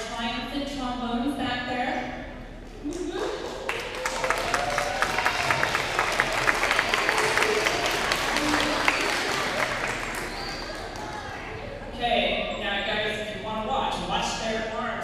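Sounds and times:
children clapping: 0:02.8 - 0:11.9
voices among applause: 0:02.9 - 0:11.9.

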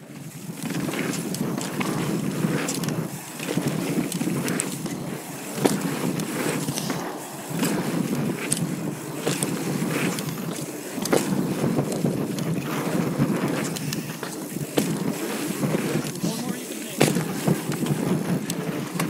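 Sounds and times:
bike clicks and rattles: 0:00.0 - 0:19.0
tyres rumbling on packed dirt: 0:00.0 - 0:19.0
wind buffeting microphone: 0:00.0 - 0:19.0.

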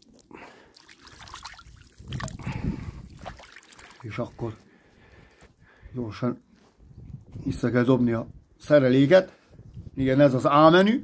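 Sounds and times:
hands splashing in river water: 0:00.0 - 0:04.2.

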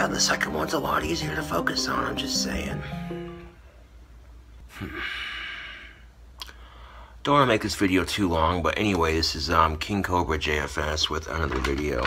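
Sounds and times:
man exhaling: 0:04.7 - 0:07.2.

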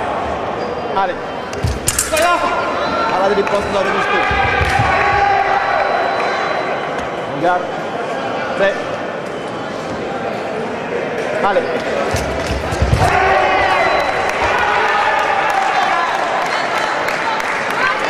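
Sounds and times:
loud shouting: 0:03.8 - 0:06.9, 0:12.9 - 0:18.0
fencers' footwork stamps: 0:12.1 - 0:14.6.

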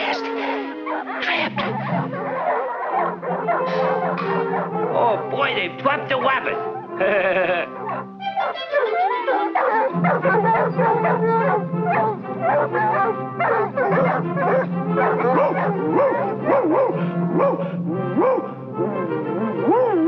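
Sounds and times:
cartoon dogs barking and howling: 0:00.0 - 0:20.0
orchestral music: 0:00.0 - 0:20.0.

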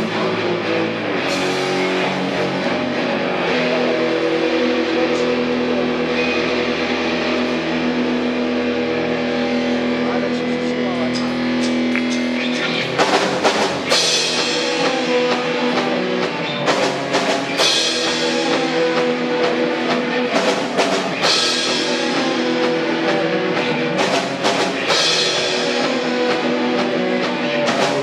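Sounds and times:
drums and cymbals: 0:00.0 - 0:28.0
sustained electric guitars and bass: 0:00.0 - 0:28.0.

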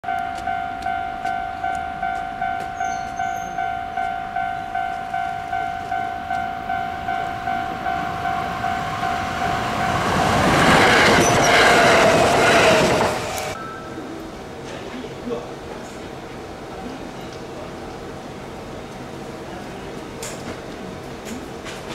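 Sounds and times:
level crossing bell ringing: 0:00.0 - 0:10.2
electric train passing: 0:00.1 - 0:16.9.

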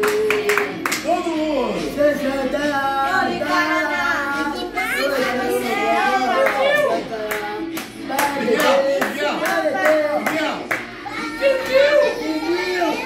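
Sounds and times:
people clapping: 0:00.0 - 0:01.1, 0:06.4 - 0:12.0
group singing a celebration song: 0:01.6 - 0:13.0.

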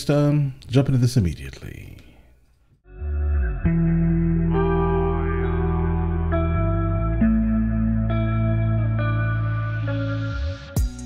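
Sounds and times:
effected guitar chords: 0:02.9 - 0:11.0.

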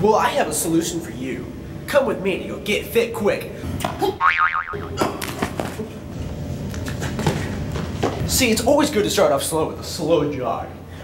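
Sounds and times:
cartoon boing spring effect: 0:04.2 - 0:05.0.

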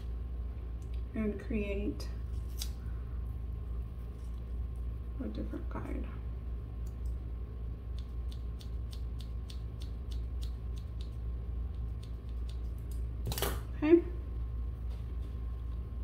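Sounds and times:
steady low hum: 0:00.0 - 0:16.0
scissors snipping hair: 0:07.9 - 0:13.0.

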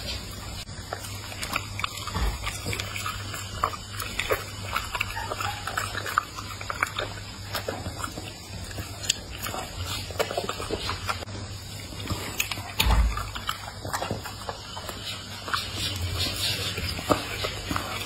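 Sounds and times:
dog chewing and smacking lips: 0:00.0 - 0:18.0.

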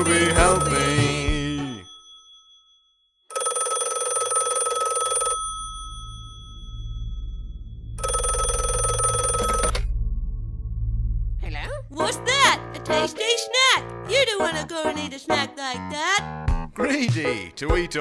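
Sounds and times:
telephone ringing: 0:00.0 - 0:07.1, 0:08.0 - 0:09.8
low hum: 0:05.7 - 0:12.8.

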